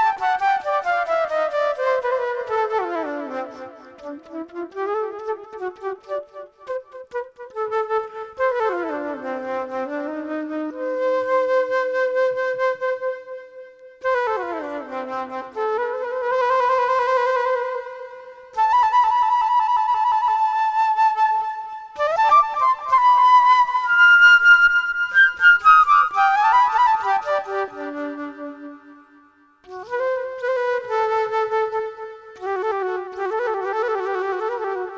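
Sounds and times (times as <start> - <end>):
solo flute improvising: 0.0 - 34.9.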